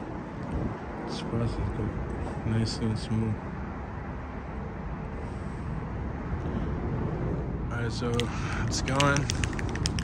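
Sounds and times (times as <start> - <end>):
low outdoor background rumble: 0.0 - 10.0.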